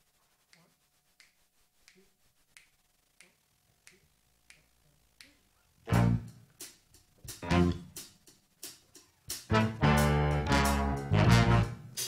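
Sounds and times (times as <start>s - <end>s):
faint finger snaps: 0.5s - 5.4s.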